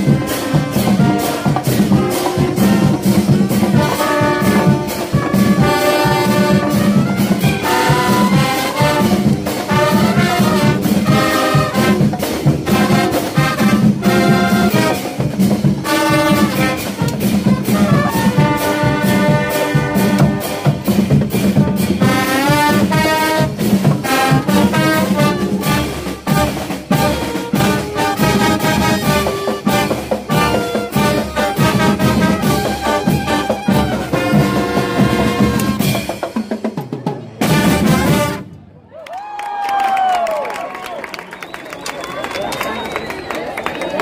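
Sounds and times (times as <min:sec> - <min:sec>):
brass instruments playing: 0:00.0 - 0:36.3, 0:37.4 - 0:38.8
snare and bass drums: 0:00.0 - 0:38.5.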